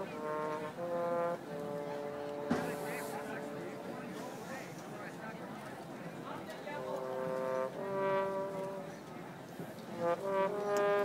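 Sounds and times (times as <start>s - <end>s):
brass section holding chords: 0.0s - 4.5s, 6.7s - 9.1s, 9.9s - 11.0s
crowd chatter: 0.0s - 11.0s.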